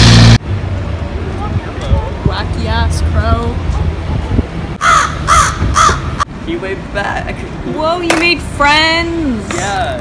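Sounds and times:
crow cawing: 4.8 - 6.3.

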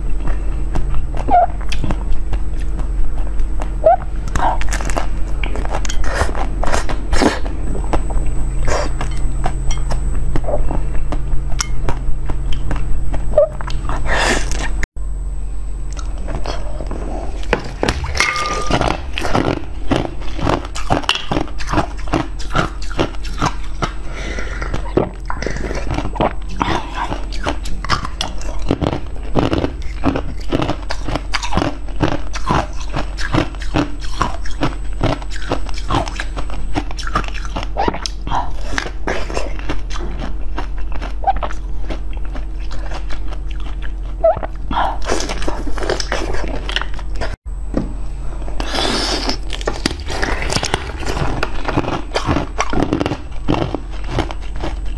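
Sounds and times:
mouth sounds of eating: 0.0 - 14.8, 15.9 - 47.4, 48.5 - 54.9
faint low hum: 0.0 - 54.9.

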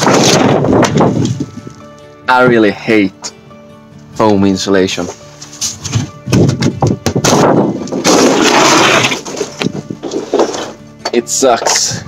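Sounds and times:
foam board crunching and crackling: 7.2 - 10.7.

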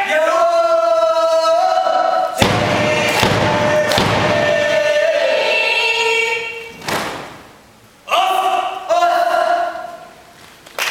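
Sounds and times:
voices singing with orchestra: 0.0 - 6.8
sharp thump: 2.4 - 4.6.

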